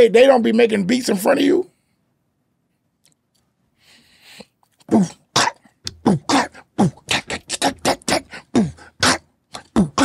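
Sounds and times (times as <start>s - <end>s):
man beatboxing: 4.8s - 10.0s.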